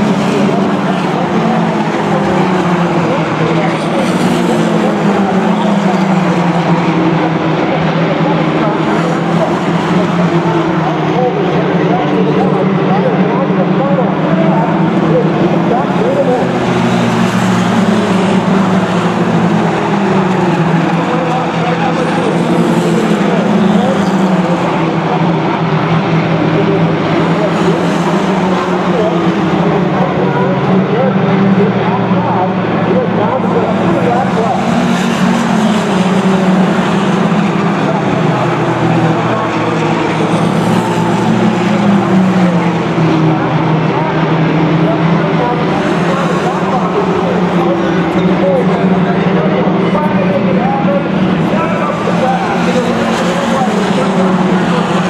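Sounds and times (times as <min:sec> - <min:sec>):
race car engines lapping: 0:00.0 - 0:55.0.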